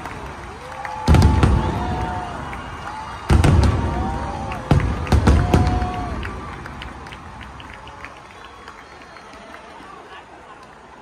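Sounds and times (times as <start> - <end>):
firework crackles: 0.0 - 9.2
firework booms: 1.0 - 2.6, 3.2 - 6.8.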